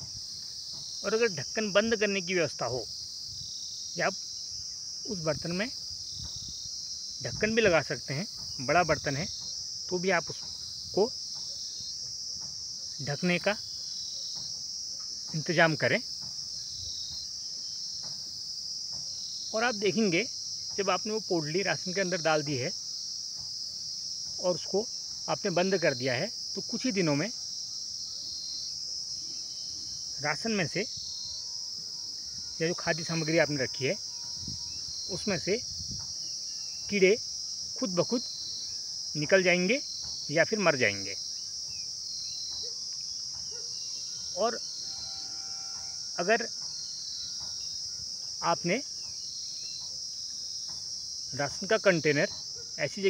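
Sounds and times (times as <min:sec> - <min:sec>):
insects chirring: 0:00.0 - 0:53.0.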